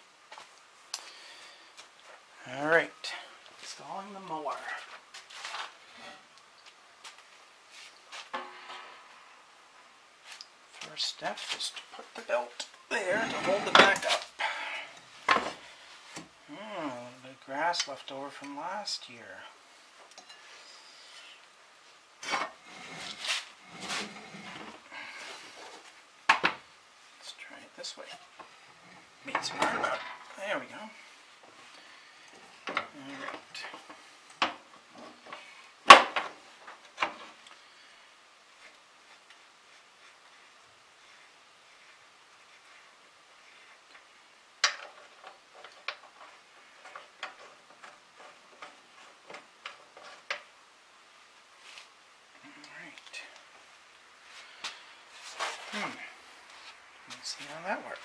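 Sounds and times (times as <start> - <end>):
metal clanks: 8.3 - 9.2
metal clinking and knocking: 8.3 - 9.2.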